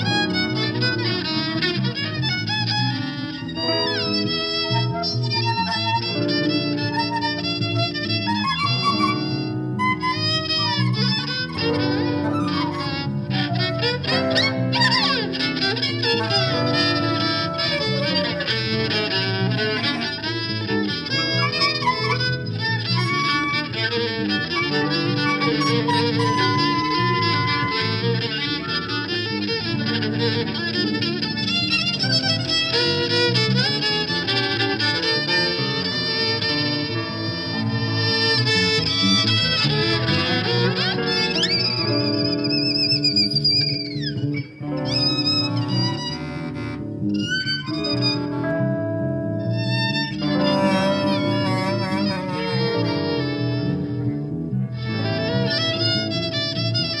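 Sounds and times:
bass: 0.0s - 57.0s
guitar: 0.0s - 57.0s
violin playing: 0.0s - 57.0s
high wavering sliding notes: 3.4s - 29.0s, 38.8s - 57.0s.

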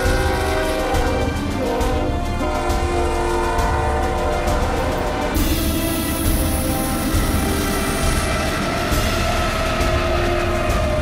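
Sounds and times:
background music with long notes: 0.0s - 11.0s
freight train wheels rumbling: 0.0s - 11.0s.

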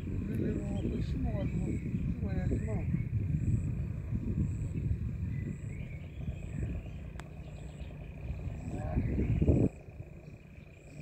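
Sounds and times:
irregular low rumble: 0.0s - 11.0s.

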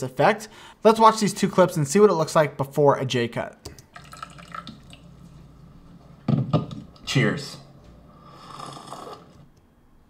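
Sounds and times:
liquid dripping: 3.7s - 7.0s
low steady hum: 3.7s - 8.4s.

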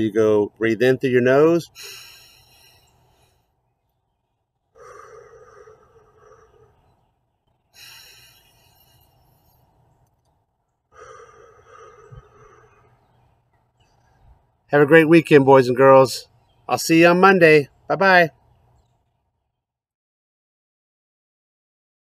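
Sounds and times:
man breathing deeply: 1.7s - 3.7s, 4.7s - 7.0s, 7.6s - 9.9s, 10.8s - 13.3s.

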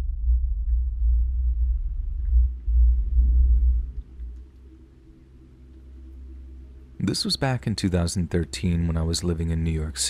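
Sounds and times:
deep bass rumble soundtrack: 0.0s - 10.0s.

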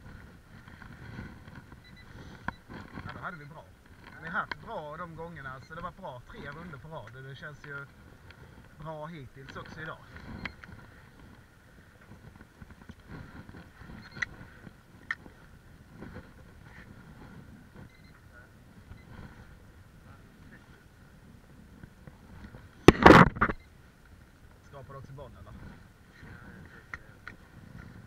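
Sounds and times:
fishing rod and reel handling clatter: 0.0s - 17.9s
wind: 0.0s - 28.0s.

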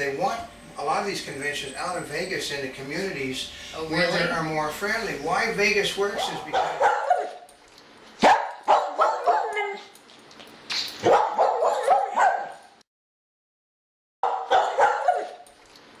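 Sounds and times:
dog barking: 6.0s - 7.5s, 8.2s - 9.9s, 11.0s - 12.7s, 14.2s - 15.4s.

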